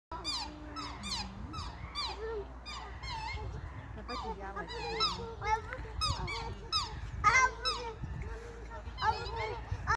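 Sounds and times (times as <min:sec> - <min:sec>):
swans calling: 0:00.1 - 0:09.9.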